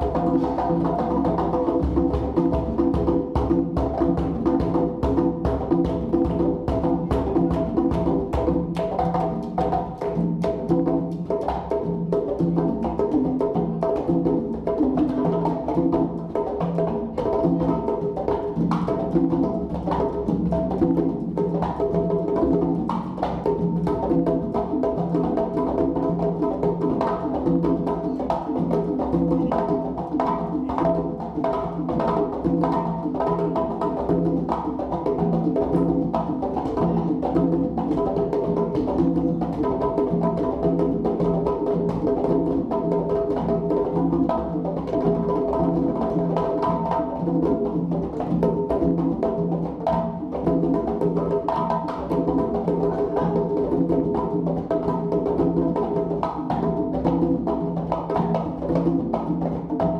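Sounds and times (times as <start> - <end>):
conga drums played by hand: 0.0 - 59.9.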